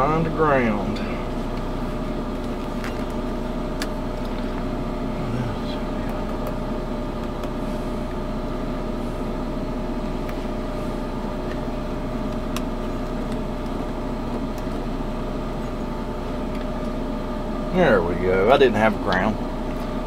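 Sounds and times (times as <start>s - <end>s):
machinery drone: 0.0s - 20.0s.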